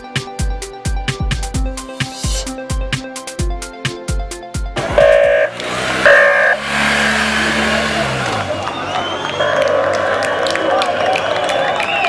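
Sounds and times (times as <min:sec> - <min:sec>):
afrobeat music with kick drum: 0:00.0 - 0:05.5
motorcycle engine passing: 0:04.8 - 0:11.0
crowd noise: 0:06.4 - 0:12.0.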